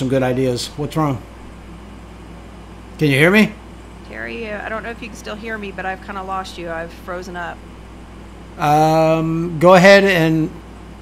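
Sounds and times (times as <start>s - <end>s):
room tone hum and hiss: 0.0s - 11.0s.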